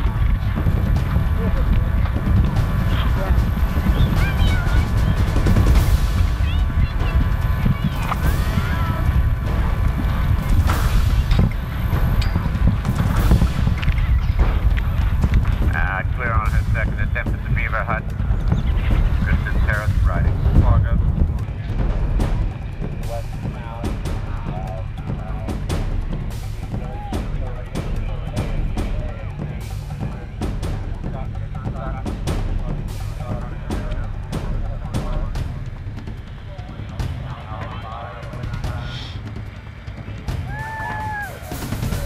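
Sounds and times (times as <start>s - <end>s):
wind buffeting microphone: 0.0s - 26.8s
faint voices: 0.0s - 42.0s.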